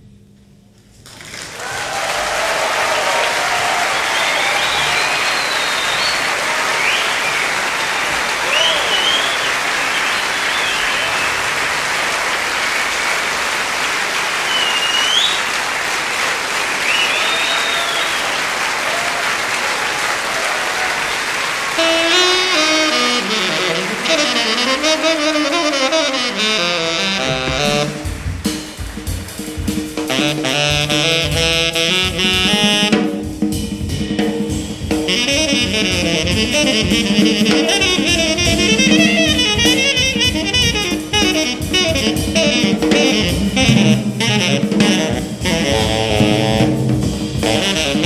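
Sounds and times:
audience applauding: 1.0 - 31.0, 36.8 - 43.7
audience shouts: 1.5 - 21.9
whistles: 3.6 - 11.6, 14.4 - 15.6, 16.7 - 18.6.

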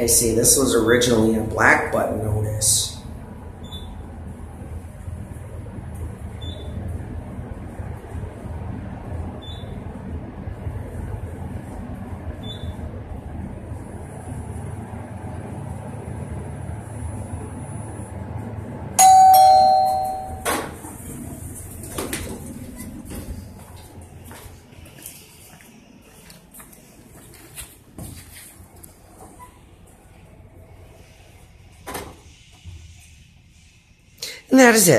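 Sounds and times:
elevator low rumble: 0.0 - 34.9
short high beeps: 19.0 - 20.5
two-note falling chime: 19.0 - 20.5
elevator doors clattering open: 19.0 - 23.5.

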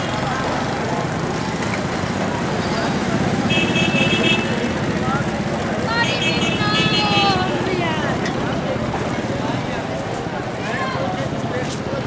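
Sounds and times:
street traffic engines: 0.0 - 12.0
vehicle horn: 3.5 - 4.7, 6.0 - 7.4.

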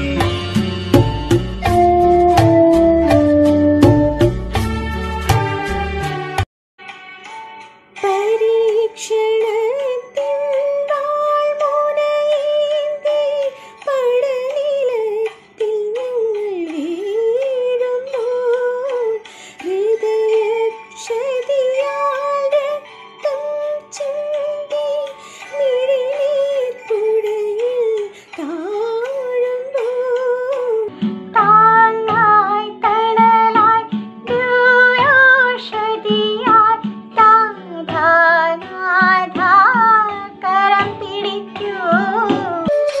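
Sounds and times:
woman singing: 8.0 - 43.0.

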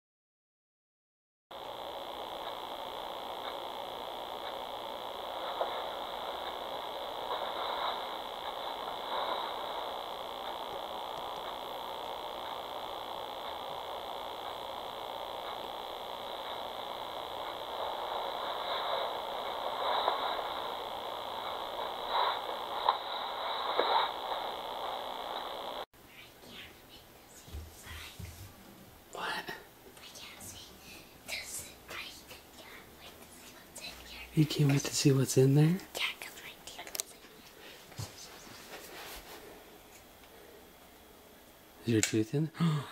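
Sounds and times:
static hiss from speaker: 1.5 - 42.9
person whispering: 29.1 - 37.6.

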